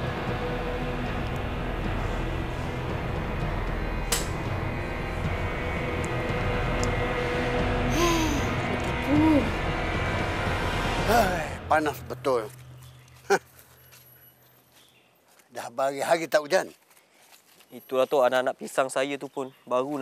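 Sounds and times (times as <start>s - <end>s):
drama score sustained tones: 0.0s - 14.3s.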